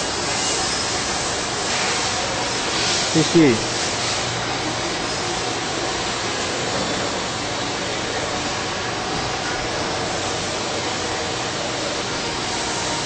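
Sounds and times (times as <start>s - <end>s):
tool grinder grinding saw blade: 0.0s - 4.3s.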